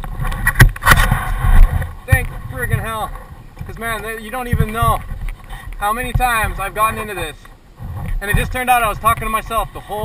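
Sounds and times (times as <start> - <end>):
heavy low rumble: 0.0 - 10.0.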